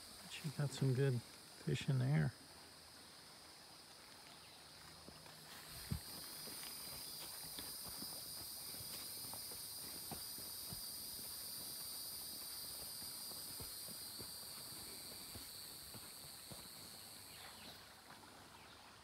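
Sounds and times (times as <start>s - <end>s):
insect chorus: 0.0s - 19.0s
footsteps on dirt path: 4.0s - 19.0s.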